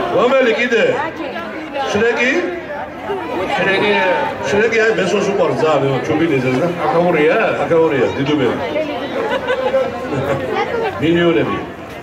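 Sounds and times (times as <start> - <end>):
background chatter: 0.0 - 12.0
voices talking: 0.0 - 12.0.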